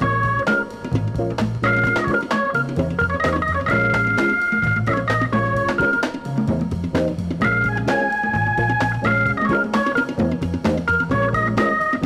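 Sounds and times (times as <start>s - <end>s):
bass line: 0.0s - 12.0s
drums: 0.0s - 12.0s
organ melody: 0.0s - 12.0s.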